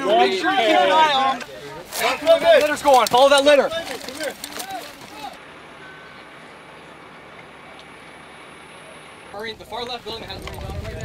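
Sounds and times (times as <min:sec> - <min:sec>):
men shouting: 0:00.0 - 0:05.4
low outdoor background noise: 0:00.0 - 0:11.0
faint beep: 0:05.7 - 0:07.0.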